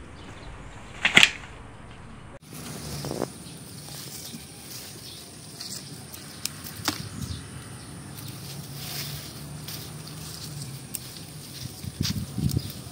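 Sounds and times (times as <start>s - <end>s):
vines and leaves rustling: 0.0s - 12.9s.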